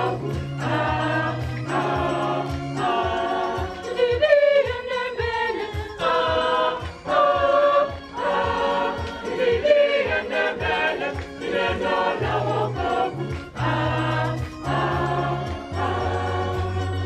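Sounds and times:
steady beat: 0:00.0 - 0:16.8
choir singing a hymn: 0:00.0 - 0:17.0.

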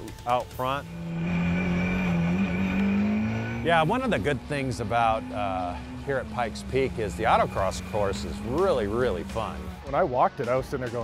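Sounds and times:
car engine accelerating: 0:00.1 - 0:10.1.

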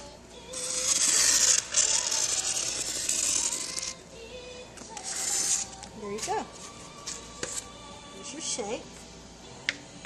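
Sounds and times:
marker scraping on styrofoam: 0:00.6 - 0:04.0, 0:05.0 - 0:05.8.

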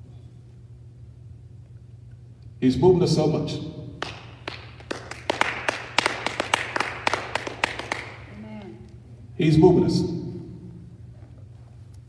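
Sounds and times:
congregation clapping: 0:04.0 - 0:08.4.

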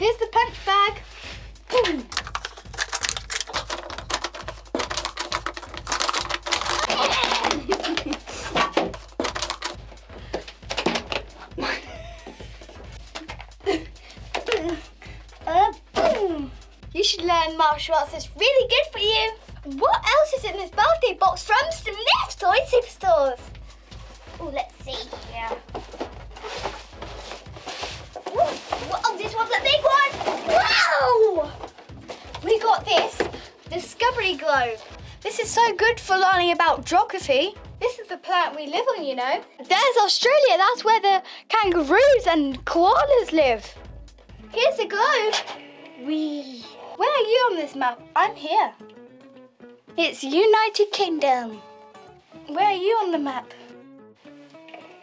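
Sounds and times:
cardboard and plastic rustling: 0:00.4 - 0:11.6, 0:23.6 - 0:35.4.

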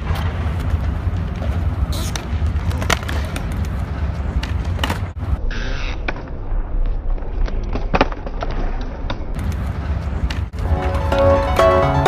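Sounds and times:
skateboard clacking on ground: 0:00.0 - 0:05.2
skateboard wheels rolling on concrete: 0:00.0 - 0:12.0.

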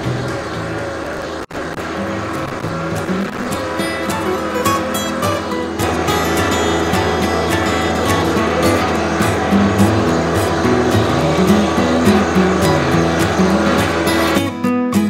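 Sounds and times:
tractor diesel engine running: 0:00.0 - 0:14.5
acoustic guitar music: 0:00.0 - 0:15.0.

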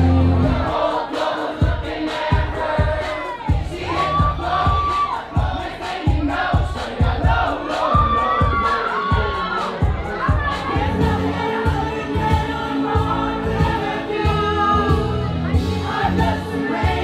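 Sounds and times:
crowd shouting and singing along: 0:00.0 - 0:17.0
loud dance music: 0:00.0 - 0:17.0.

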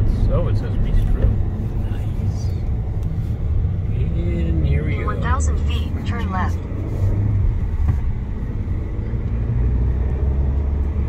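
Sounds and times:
car engine and road hum: 0:00.0 - 0:11.0.

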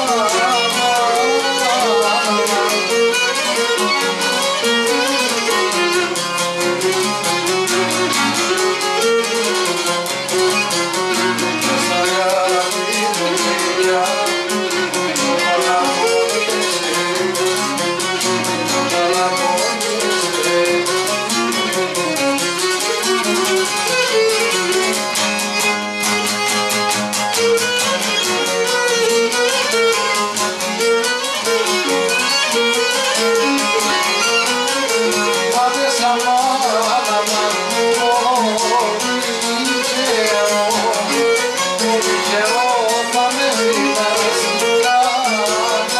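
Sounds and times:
bowed string melody: 0:00.0 - 0:45.9
plucked lute rhythm: 0:00.0 - 0:45.9.

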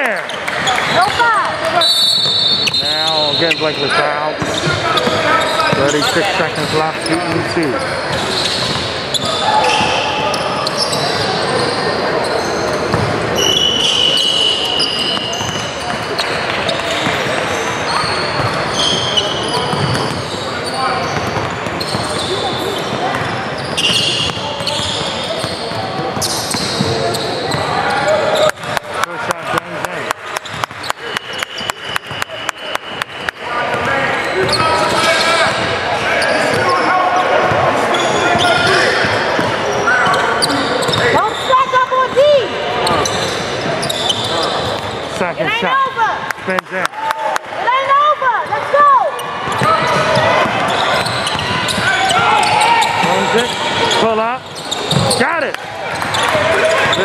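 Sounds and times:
sneakers squeaking on hardwood: 0:00.0 - 0:28.8, 0:30.4 - 0:45.8, 0:48.5 - 0:57.0
voices on court: 0:00.0 - 0:57.0.

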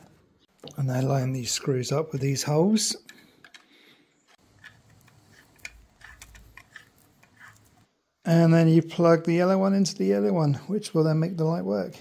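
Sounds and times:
small clicks and taps of handling: 0:03.0 - 0:03.7.

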